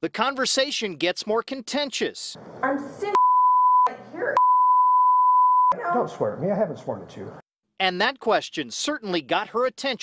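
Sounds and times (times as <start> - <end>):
censor bleep: 3.1 - 5.8.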